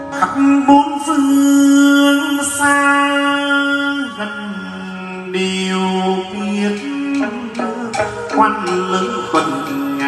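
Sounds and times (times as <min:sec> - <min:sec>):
man singing long vowel notes: 0:00.0 - 0:10.0
plucked lute: 0:00.0 - 0:10.0.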